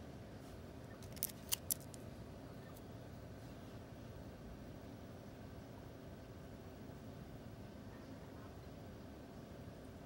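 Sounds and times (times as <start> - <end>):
plastic sleeve crackling: 1.0 - 2.0.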